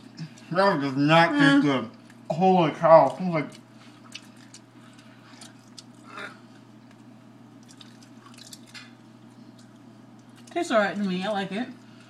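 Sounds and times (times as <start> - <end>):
wet chewing and mouth clicks: 2.9 - 10.6.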